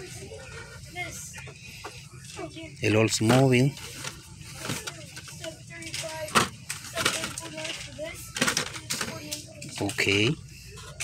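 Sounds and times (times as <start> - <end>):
plastic and cardboard rustling: 3.2 - 11.0.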